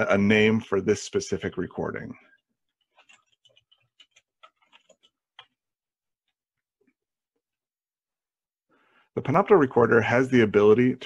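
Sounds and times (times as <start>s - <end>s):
keyboard typing clicks: 3.0s - 5.6s.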